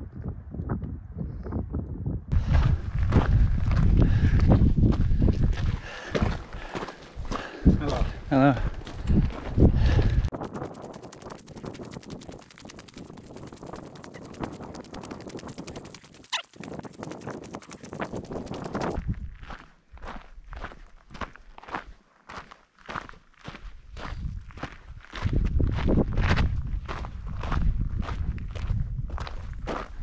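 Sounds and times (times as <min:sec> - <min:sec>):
footsteps crunching on gravel: 0:02.4 - 0:13.8, 0:17.6 - 0:30.0.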